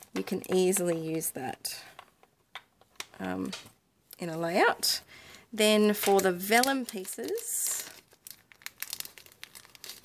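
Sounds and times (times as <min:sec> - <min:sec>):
plastic bag crinkling: 0:05.9 - 0:10.0.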